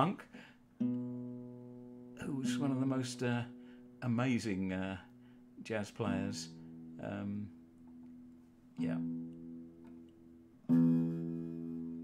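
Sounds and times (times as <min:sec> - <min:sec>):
guitar chords ringing: 0:00.4 - 0:12.0.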